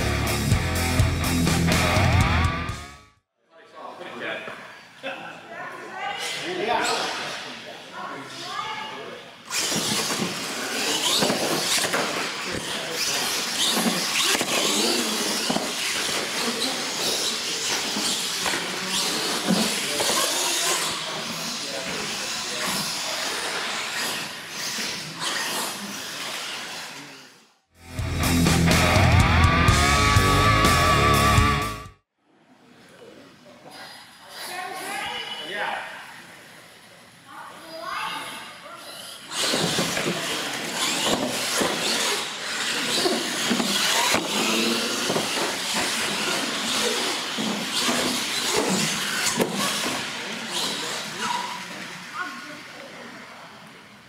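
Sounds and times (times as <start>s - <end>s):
rock music: 0.0s - 3.2s, 27.8s - 32.0s
voices in a hall: 3.4s - 27.6s, 32.1s - 54.0s
toy truck motors and tyres: 9.4s - 27.6s, 38.2s - 52.6s.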